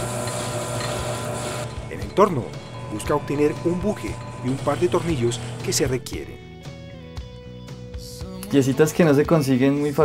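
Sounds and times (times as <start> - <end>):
lathe tool hissing scrape: 0.0 - 6.1
machine low hum: 0.0 - 6.6.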